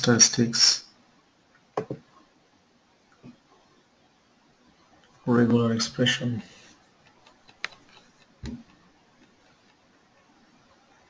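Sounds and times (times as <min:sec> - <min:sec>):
computer mouse clicks: 0:07.1 - 0:09.8.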